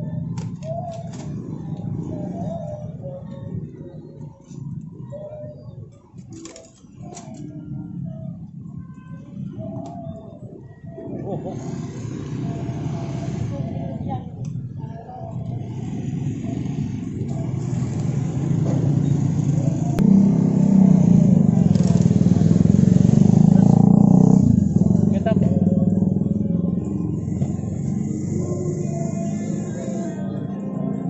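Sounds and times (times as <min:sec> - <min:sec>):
vehicle engine running: 0:14.8 - 0:31.0.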